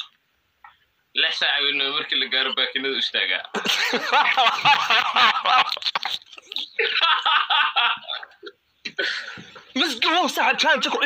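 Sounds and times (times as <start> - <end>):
men laughing: 3.5 - 9.7.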